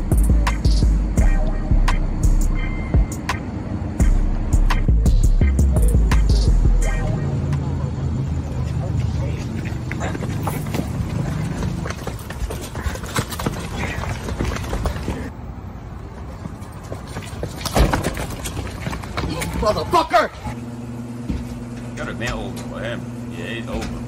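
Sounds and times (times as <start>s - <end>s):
deep bass tone: 4.0s - 7.7s
indistinct voices: 4.9s - 15.3s.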